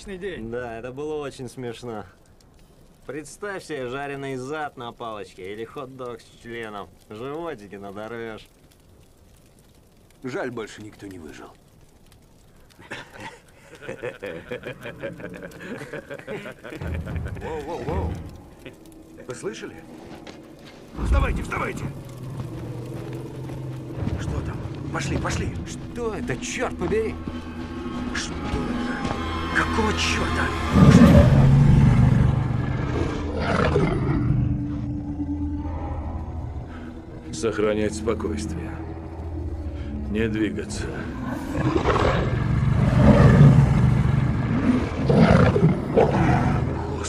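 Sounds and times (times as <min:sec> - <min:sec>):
faint clicks: 0:01.7 - 0:28.6
low rumbling drone: 0:16.8 - 0:47.0
wolves growling low: 0:26.8 - 0:47.0.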